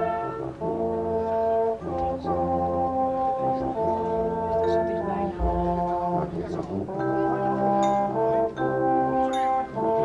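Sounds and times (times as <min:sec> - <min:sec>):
brass playing held chords: 0:00.0 - 0:10.0
deep bass note: 0:05.3 - 0:06.6.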